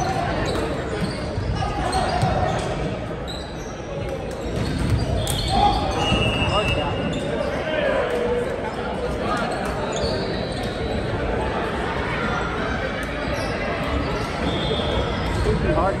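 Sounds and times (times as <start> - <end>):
sneaker squeaks: 0.0 - 7.9, 8.9 - 11.3, 13.2 - 15.7
players chattering: 0.0 - 16.0.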